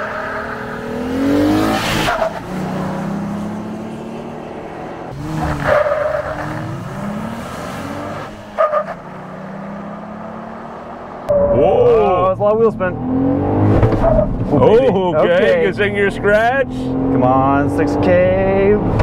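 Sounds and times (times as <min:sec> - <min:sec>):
engine revving at full throttle: 0:00.7 - 0:08.4, 0:12.8 - 0:14.0, 0:15.8 - 0:19.0.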